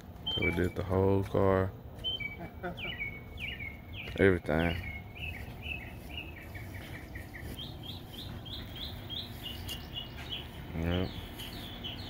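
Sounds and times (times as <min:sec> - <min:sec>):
songbird chirping: 0:00.0 - 0:12.0.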